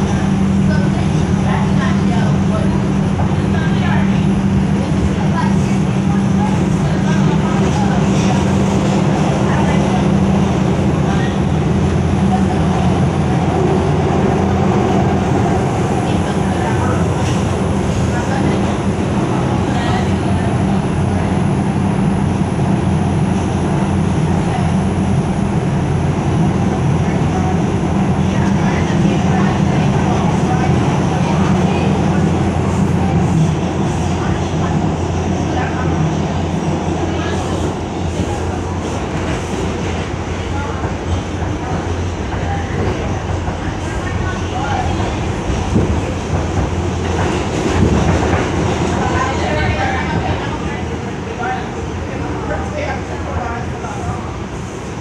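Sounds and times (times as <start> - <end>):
subway train rumble inside car: 0.0 - 55.0.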